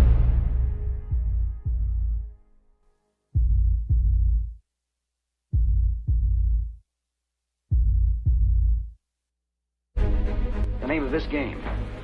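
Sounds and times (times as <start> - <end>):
deep heartbeat-like thumps: 0.0 - 2.4, 3.4 - 4.6, 5.5 - 6.8, 7.7 - 9.0.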